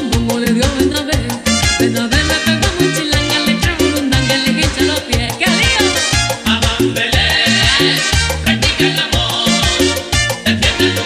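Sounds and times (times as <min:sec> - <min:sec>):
congas and timbales: 0:00.0 - 0:11.0
salsa band music: 0:00.0 - 0:11.0
trumpets: 0:01.4 - 0:04.8, 0:05.7 - 0:06.8, 0:07.7 - 0:08.9, 0:09.5 - 0:11.0.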